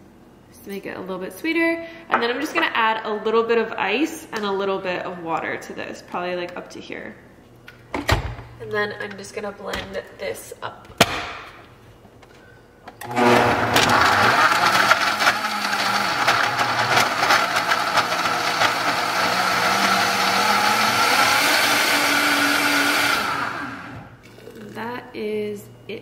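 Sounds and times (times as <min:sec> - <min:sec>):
blender blending ice: 0:13.0 - 0:24.7.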